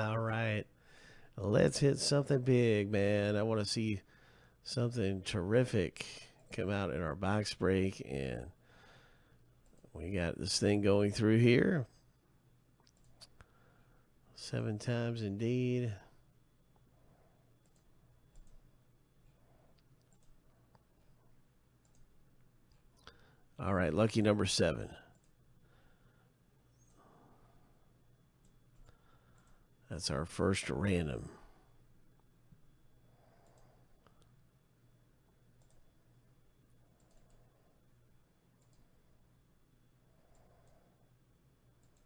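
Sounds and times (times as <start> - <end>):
faint low hum: 0.0 - 42.0
computer mouse clicks: 12.8 - 13.5, 17.6 - 18.7, 19.7 - 21.2, 21.8 - 23.2, 25.1 - 25.4, 33.3 - 34.4, 35.6 - 35.9, 36.9 - 37.5, 38.5 - 38.9, 41.8 - 42.0.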